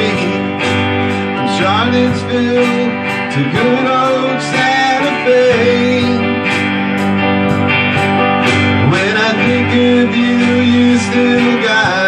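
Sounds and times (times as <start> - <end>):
drum kit steady beat: 0.0 - 12.0
keyboard: 0.0 - 12.0
strummed acoustic guitar: 0.0 - 12.0.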